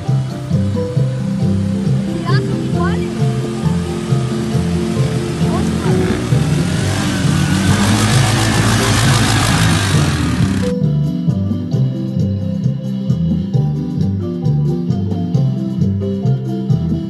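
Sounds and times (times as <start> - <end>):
quad bike engine running: 0.0 - 10.8
background music: 0.0 - 17.0.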